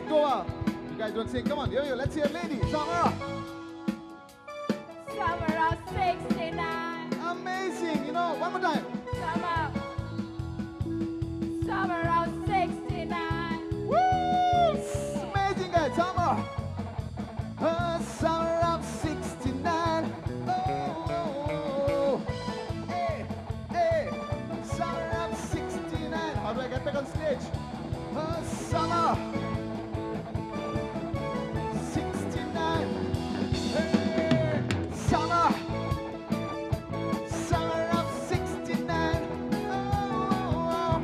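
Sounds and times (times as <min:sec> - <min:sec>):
drum and bass beat: 0:00.0 - 0:41.0
live rock band playing: 0:00.0 - 0:41.0
pitch-bending lead melody: 0:00.0 - 0:41.0.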